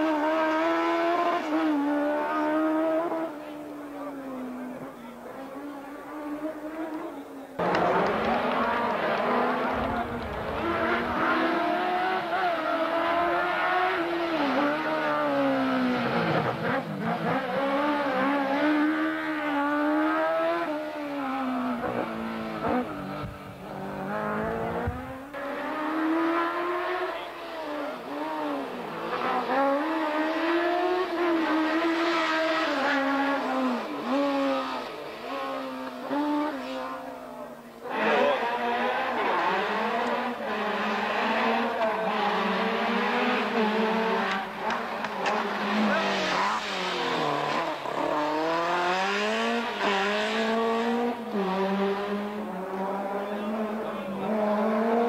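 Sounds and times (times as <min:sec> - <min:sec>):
racing car engines revving: 0:00.0 - 0:55.0.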